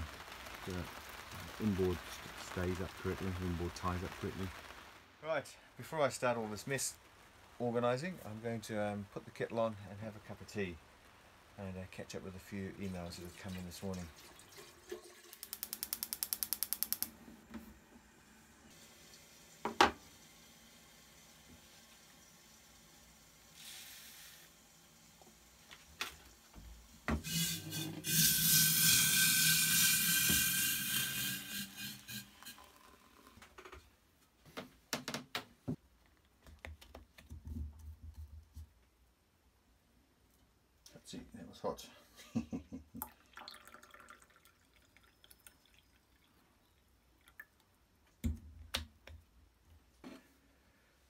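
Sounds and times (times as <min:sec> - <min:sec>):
water pouring into mug: 0:13.3 - 0:16.0, 0:27.3 - 0:33.4, 0:43.0 - 0:47.6
sharp click: 0:15.4 - 0:17.1.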